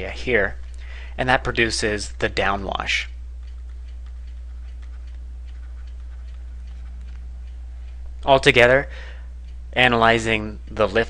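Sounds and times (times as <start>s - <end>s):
steady low hum: 0.0s - 11.0s
stylus ticking on drawing tablet: 3.4s - 8.8s, 9.4s - 11.0s.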